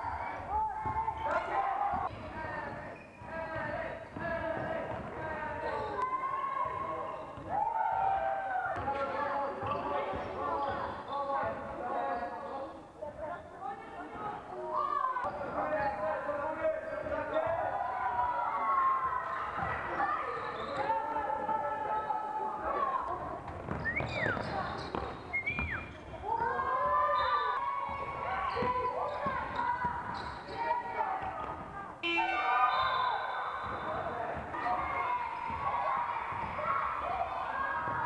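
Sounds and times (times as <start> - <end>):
basketball bouncing on court: 1.9 - 6.0, 8.7 - 11.0, 23.5 - 26.5, 33.6 - 38.0.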